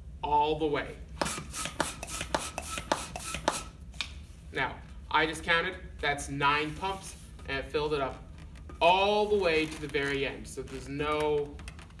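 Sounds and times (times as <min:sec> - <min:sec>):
hand balloon pump strokes: 0:01.2 - 0:03.8.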